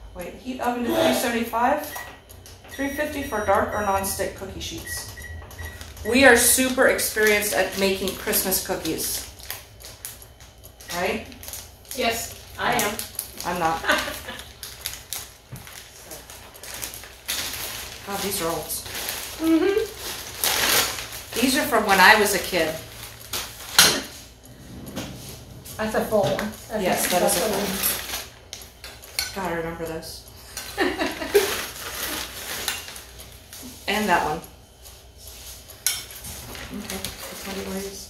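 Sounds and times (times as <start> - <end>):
person laughing: 0.8 - 1.3, 13.7 - 14.5, 19.4 - 19.9, 30.7 - 31.6
plastic bags rustling: 3.8 - 24.4, 25.2 - 29.2, 30.4 - 38.0
kitchen items clattering: 15.7 - 29.5, 30.5 - 33.2.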